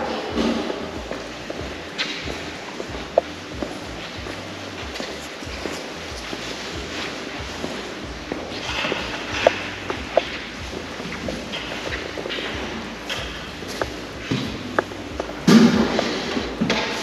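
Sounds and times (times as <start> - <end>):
footsteps on hard floor: 0.0 - 17.0.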